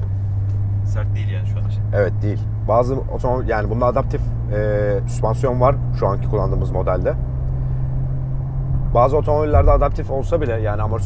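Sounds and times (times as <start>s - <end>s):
car engine and road noise: 0.0s - 11.0s
even hum: 0.0s - 11.0s.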